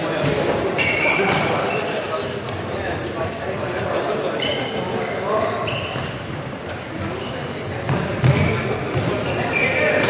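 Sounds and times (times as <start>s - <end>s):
shoes squeaking on wooden floor: 5.4s - 10.0s.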